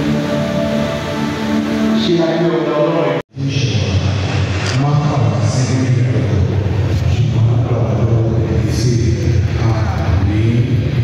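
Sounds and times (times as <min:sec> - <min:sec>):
sung church music: 0:00.0 - 0:11.0.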